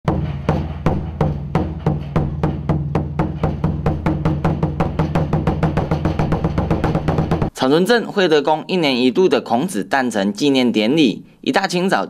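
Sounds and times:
barrel drum beaten with sticks: 0.0 - 7.6.

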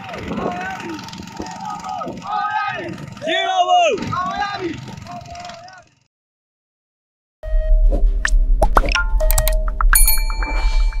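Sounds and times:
deep bass drone: 7.5 - 11.0
electronic dings and clicks: 8.8 - 11.0
bell-like chimes: 9.9 - 11.0.

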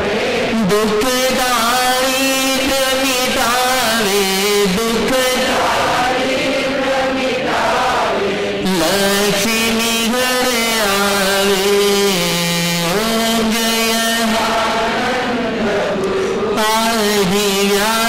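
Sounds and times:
man chanting: 0.5 - 6.0, 8.6 - 18.0.

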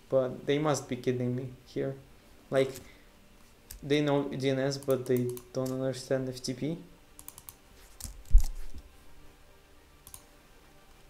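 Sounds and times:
computer keyboard keystrokes: 4.8 - 5.8, 7.2 - 8.5, 10.0 - 10.3.

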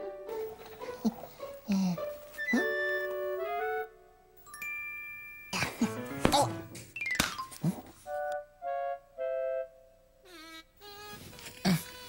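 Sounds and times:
bell-like background music: 2.4 - 6.2
rough cough-like vocal noises: 5.6 - 6.5.

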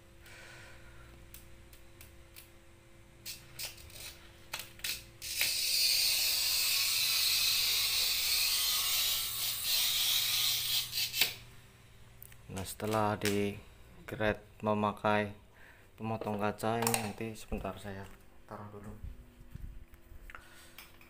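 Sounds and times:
glass cutter scoring hiss: 4.8 - 11.4.

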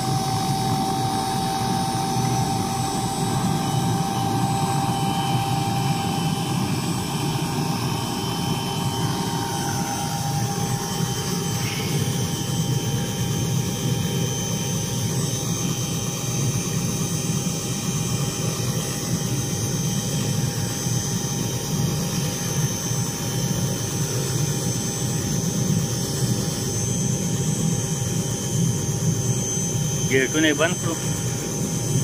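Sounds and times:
helicopter engine and rotor: 0.0 - 32.0.

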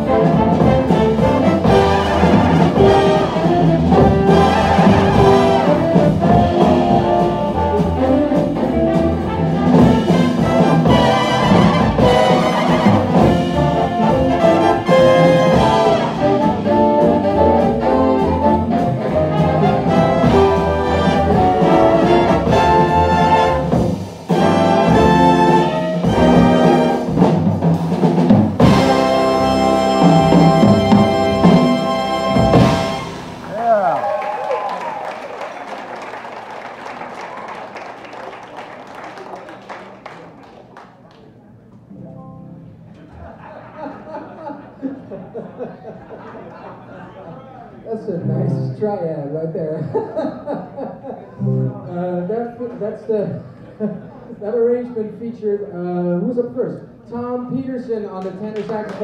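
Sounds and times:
big band jazz playing: 0.0 - 33.7, 41.8 - 43.4, 48.2 - 49.3, 51.4 - 52.6.

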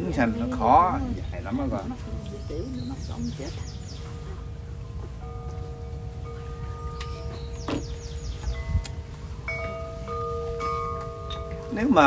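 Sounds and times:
bird chirping: 0.0 - 12.0
wind chimes ringing: 0.0 - 12.0
wind rumble on microphone: 0.0 - 12.0.

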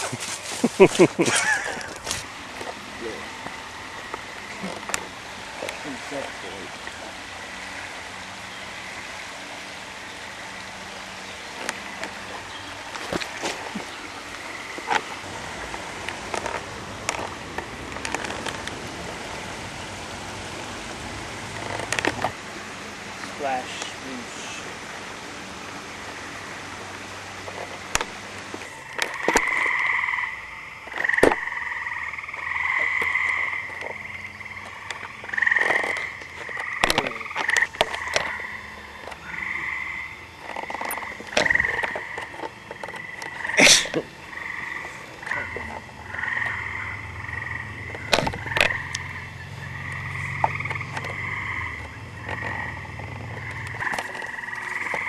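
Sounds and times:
frogs trilling: 0.8 - 55.0.

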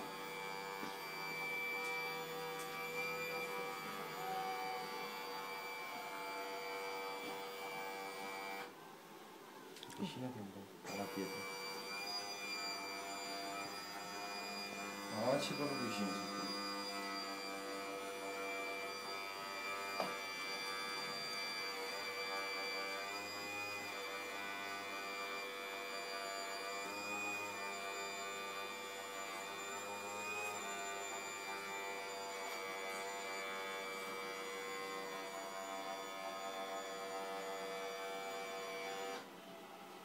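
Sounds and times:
hydraulic pump whine: 0.0 - 8.7, 10.8 - 39.3.

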